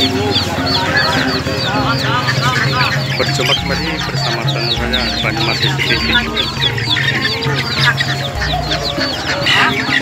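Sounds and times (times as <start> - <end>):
background music with low notes: 0.0 - 10.0
caged birds chirping: 0.0 - 10.0.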